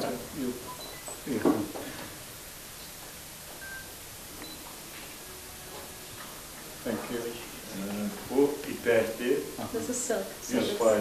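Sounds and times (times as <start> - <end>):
steady hiss: 0.0 - 11.0
high beeps: 0.6 - 1.5, 3.6 - 4.8.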